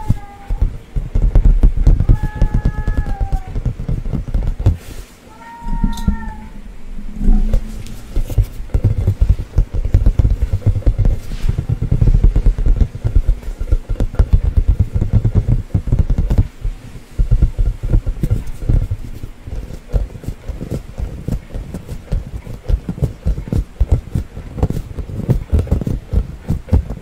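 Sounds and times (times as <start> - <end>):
fingers tapping on rubber ball: 0.0 - 4.8, 7.5 - 27.0.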